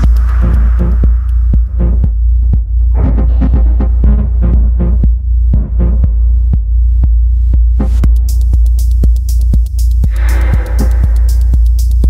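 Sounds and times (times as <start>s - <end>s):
clicking percussive hits: 0.0s - 4.2s
deep sub-bass: 0.0s - 12.0s.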